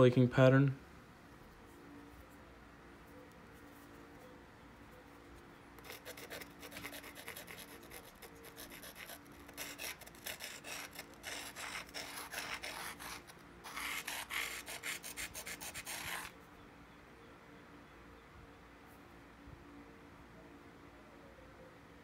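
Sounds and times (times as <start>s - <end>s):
stone scraping on stone blade: 6.0s - 16.3s.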